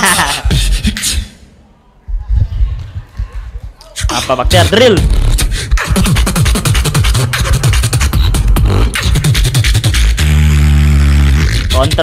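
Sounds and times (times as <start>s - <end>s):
beatboxing: 0.0s - 1.5s, 2.4s - 12.0s.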